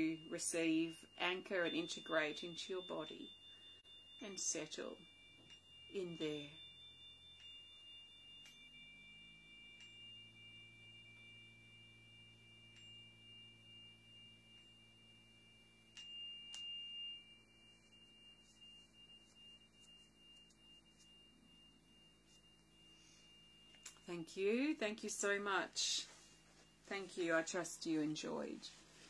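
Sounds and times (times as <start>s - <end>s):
metal chime ringing: 0.0s - 29.0s.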